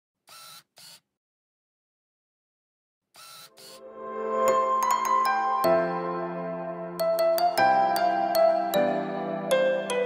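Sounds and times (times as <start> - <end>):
bright logo intro bursts: 3.6 - 6.7.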